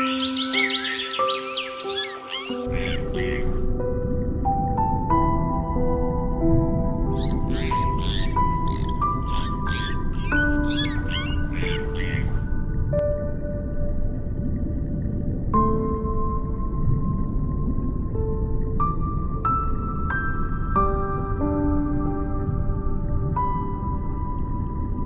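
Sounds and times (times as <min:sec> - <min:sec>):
gentle background music: 0:00.0 - 0:25.0.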